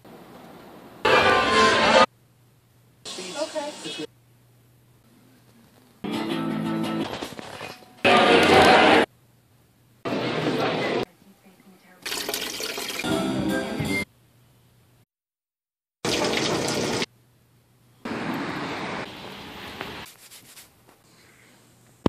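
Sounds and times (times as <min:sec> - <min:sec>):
water filling a bottle: 0:12.0 - 0:13.0
washing machine filling with water: 0:12.0 - 0:13.1, 0:16.0 - 0:17.1.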